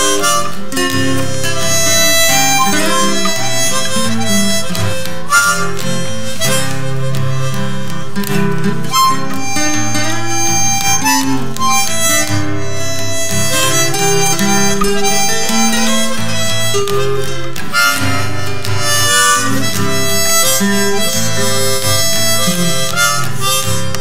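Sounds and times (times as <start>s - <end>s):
acoustic guitar accompaniment: 0.0s - 24.0s
harmonica melody: 0.0s - 24.0s.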